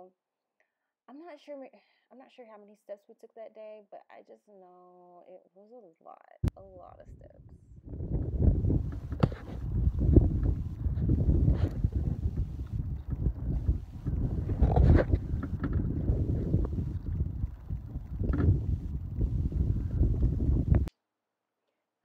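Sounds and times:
wind buffeting microphone: 6.6s - 20.9s
wind and road noise inside car: 8.0s - 20.9s.

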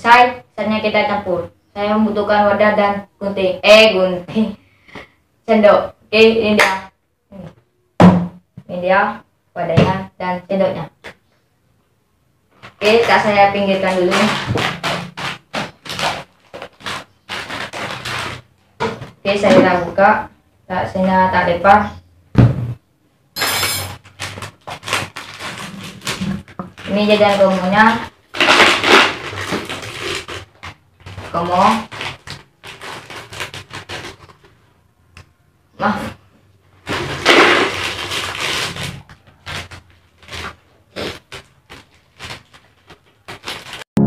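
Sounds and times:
plastic snack packets rustling: 12.6s - 18.8s, 24.0s - 34.7s, 36.8s - 43.9s.

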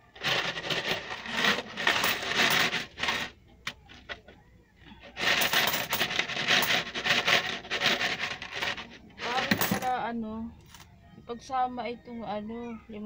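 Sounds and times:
coins pouring onto coins: 0.2s - 3.3s, 5.2s - 9.9s.

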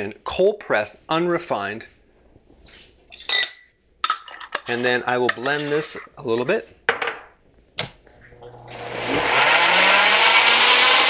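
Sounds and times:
soft scrape of jar: 4.6s - 6.0s.

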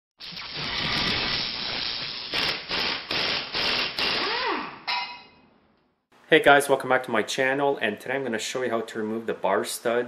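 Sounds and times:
sharp ringing hit: 4.9s - 5.4s.

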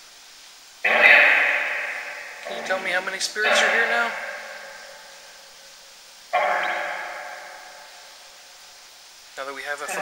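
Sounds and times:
voice-like tone with echo: 0.8s - 5.4s, 6.4s - 8.3s, 9.7s - 10.0s.

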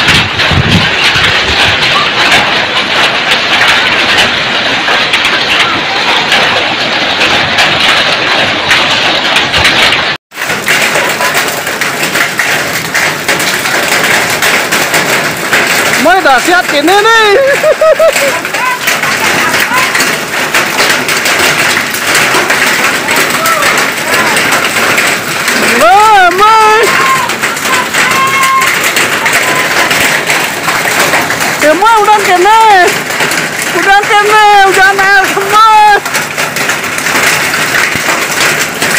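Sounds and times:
hail and rain pelting down: 0.0s - 38.9s.

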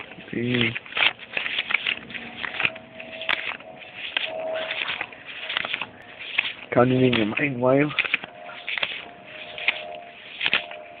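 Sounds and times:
banknotes being counted by hand: 0.0s - 11.0s.

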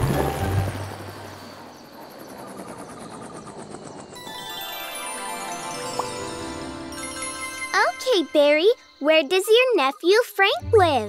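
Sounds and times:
cartoon helicopter rotor chopping: 0.0s - 4.5s
bright tinkling chime: 4.2s - 10.0s
background music: 4.2s - 11.0s.

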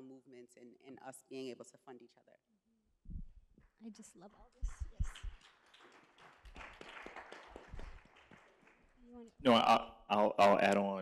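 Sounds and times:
light hand claps: 4.6s - 9.0s.

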